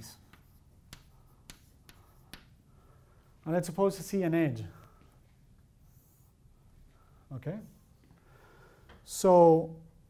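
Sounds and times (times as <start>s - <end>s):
chalk tapping on blackboard: 0.0s - 2.6s.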